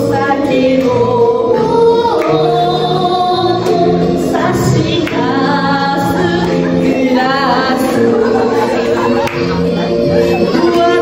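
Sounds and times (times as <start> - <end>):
instrumental accompaniment: 0.0 - 11.0
woman singing: 0.0 - 11.0.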